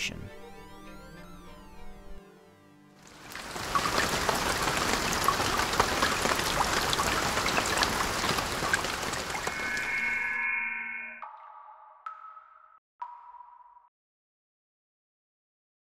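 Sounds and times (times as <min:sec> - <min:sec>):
patter of raindrops: 0:03.0 - 0:09.9
bright chime: 0:09.4 - 0:11.4.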